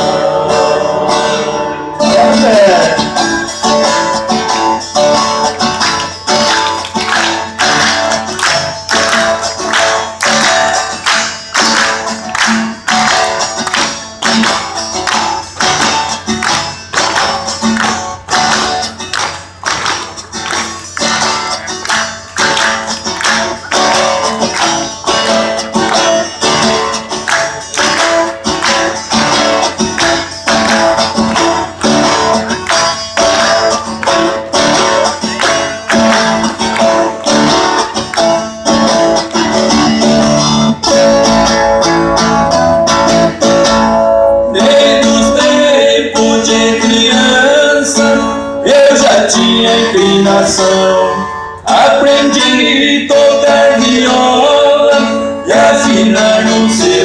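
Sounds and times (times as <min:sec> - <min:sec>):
person singing: 0:00.0 - 0:03.2, 0:44.4 - 0:57.0
strummed viola and guitar: 0:00.0 - 0:57.0.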